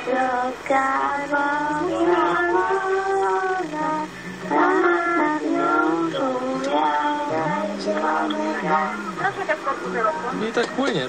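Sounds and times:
children singing over telephone: 0.0 - 10.4.

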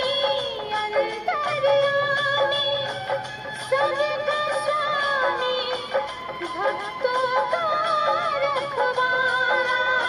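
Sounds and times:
person singing devotional song: 0.0 - 10.0.

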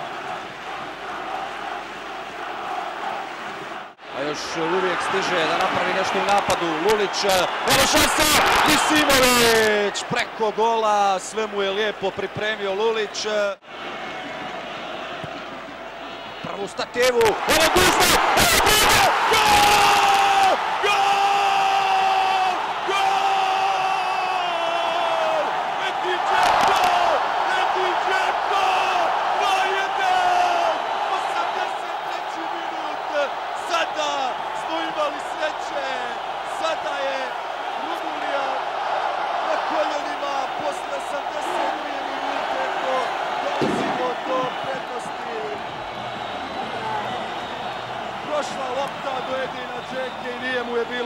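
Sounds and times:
stadium crowd cheering: 0.0 - 51.0.

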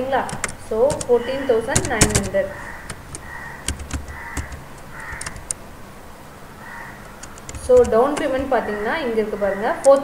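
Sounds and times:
computer mouse clicks: 0.3 - 5.6, 7.0 - 8.4, 9.8 - 10.0
bird cawing: 1.0 - 5.6, 6.3 - 7.6, 8.2 - 9.8.

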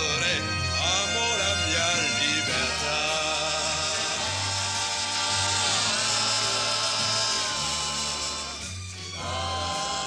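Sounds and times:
bass line: 0.0 - 10.0
orchestra holding chords: 0.0 - 10.0.

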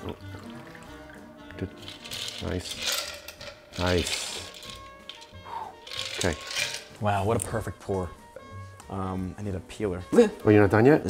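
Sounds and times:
soft background music: 0.0 - 11.0
cocktail strained from glass with ice: 0.1 - 6.9.

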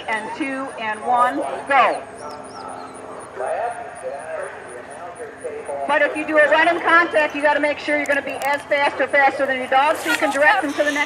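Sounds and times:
quiet outdoor background noise: 0.0 - 11.0
person calling out in distance: 9.9 - 11.0.

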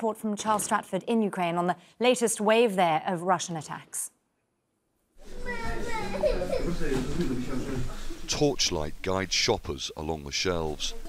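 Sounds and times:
young child talking: 5.4 - 6.6.

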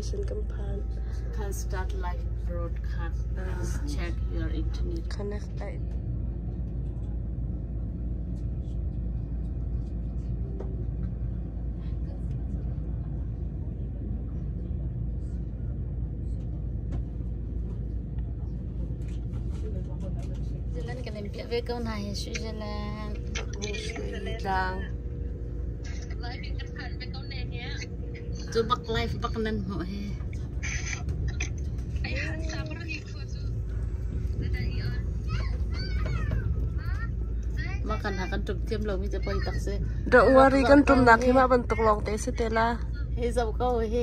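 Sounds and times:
train rumbling: 0.0 - 44.0
voices: 18.7 - 44.0.

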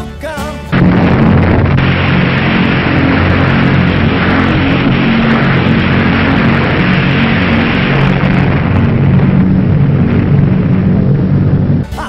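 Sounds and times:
explosion roar: 0.7 - 12.0
held low tones: 0.7 - 12.0.

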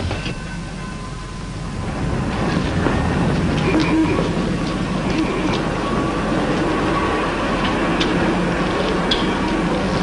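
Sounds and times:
film soundtrack hiss and crackle: 0.0 - 10.0.

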